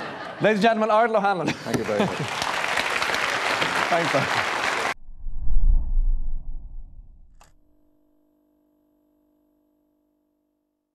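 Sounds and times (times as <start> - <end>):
studio applause: 1.7 - 5.0.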